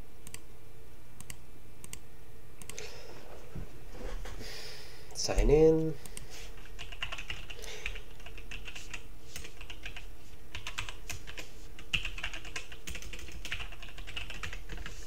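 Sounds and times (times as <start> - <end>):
typing on computer keyboard: 6.6 - 15.0.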